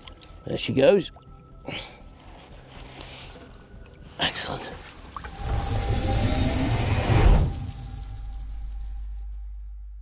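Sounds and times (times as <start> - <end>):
rising whoosh: 5.2 - 9.6.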